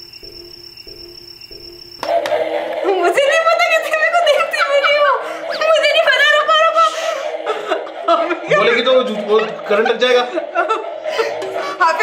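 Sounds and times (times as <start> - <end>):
high electronic whine: 0.0 - 3.6.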